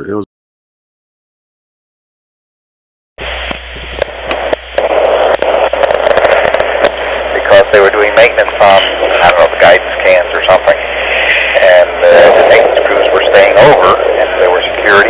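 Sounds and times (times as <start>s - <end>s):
man's voice over phone: 0.0s - 0.3s, 6.8s - 15.0s
telephone line hiss: 3.2s - 15.0s.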